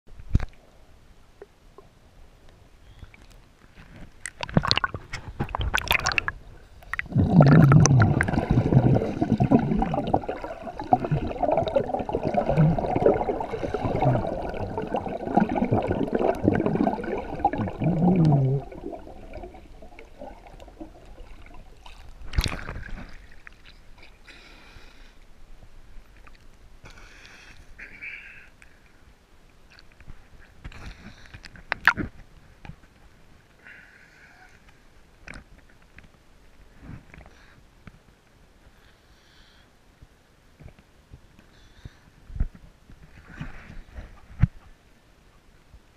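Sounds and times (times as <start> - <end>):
muffled underwater water sloshing: 3.2 - 23.9
bubbling splashes: 4.2 - 23.1.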